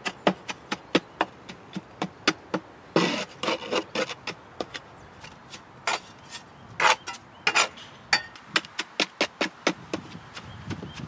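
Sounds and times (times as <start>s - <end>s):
stick tapping stone: 0.0s - 3.1s, 6.8s - 11.0s
stick scraping gritty clay on stone: 0.0s - 11.0s.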